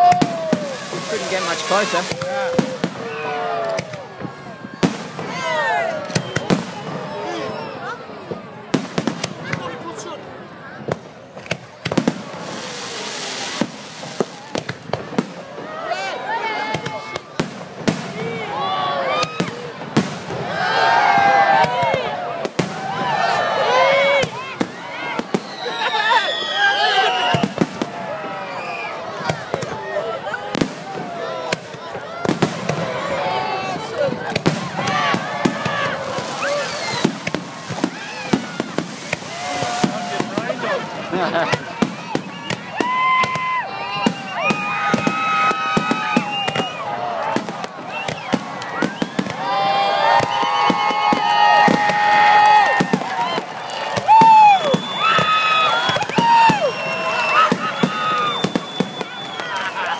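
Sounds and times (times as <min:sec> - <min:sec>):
fireworks bursting with sharp bangs: 0:00.0 - 0:10.0, 0:10.8 - 0:59.9
people's voices: 0:00.0 - 0:59.9.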